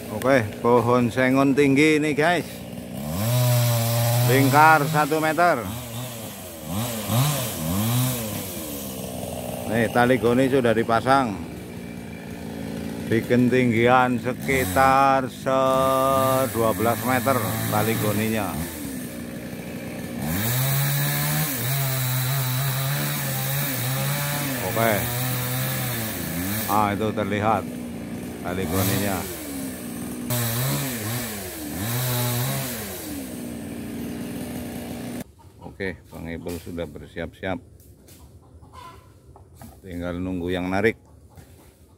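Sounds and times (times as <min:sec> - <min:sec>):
chainsaw engine revving: 0:00.0 - 0:35.3.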